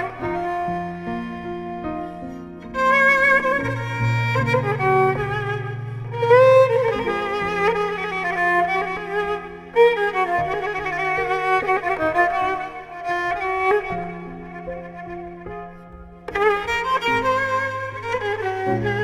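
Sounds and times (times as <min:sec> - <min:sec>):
bowed spike fiddle melody: 0:00.0 - 0:19.0.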